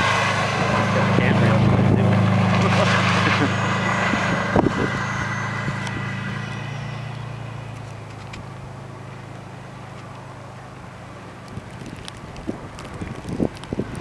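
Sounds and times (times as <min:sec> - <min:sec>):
car engine driving away: 0:00.0 - 0:14.0.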